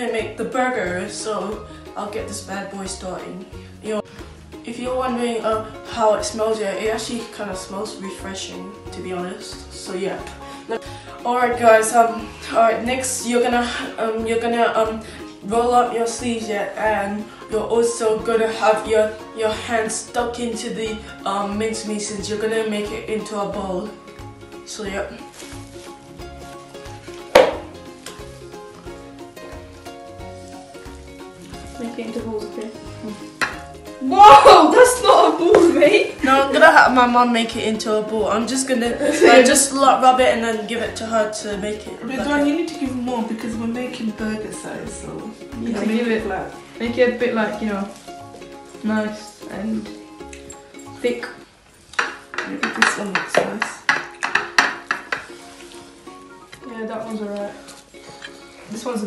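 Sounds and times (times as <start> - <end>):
background music with steady beat: 0.0 - 59.0
hands kneading raw mince: 25.2 - 29.1
hands slapping raw mince: 27.1 - 28.3.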